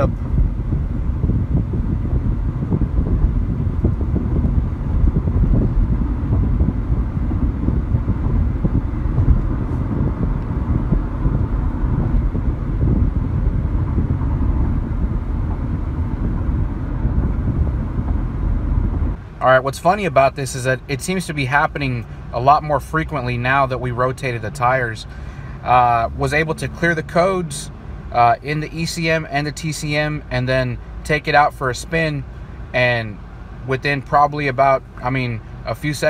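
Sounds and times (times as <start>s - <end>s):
car engine accelerating: 0.0s - 36.0s
tyres rumbling on road: 0.0s - 36.0s.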